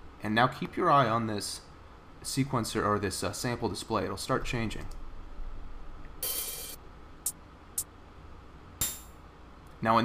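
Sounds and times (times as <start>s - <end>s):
thin ringing high tone: 6.2s - 6.8s.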